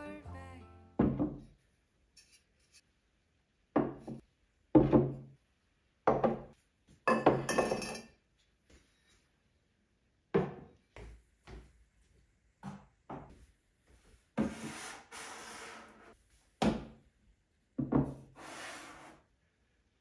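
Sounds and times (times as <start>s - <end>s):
ceramic clinking against ceramic: 7.1s - 8.2s.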